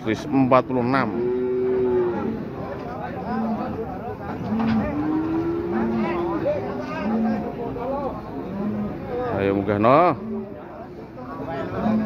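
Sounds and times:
cow mooing: 0:00.8 - 0:02.5, 0:04.4 - 0:07.6, 0:08.4 - 0:09.3, 0:11.7 - 0:12.0.

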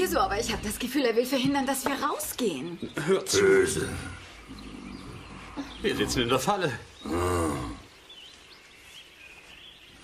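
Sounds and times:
deep animal-like growl: 0:03.3 - 0:06.4, 0:07.0 - 0:07.9.

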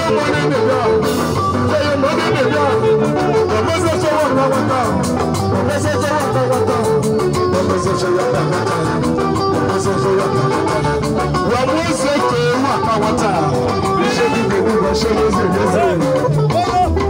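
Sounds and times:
live band music: 0:00.0 - 0:17.0
plucked guitar: 0:00.0 - 0:17.0.

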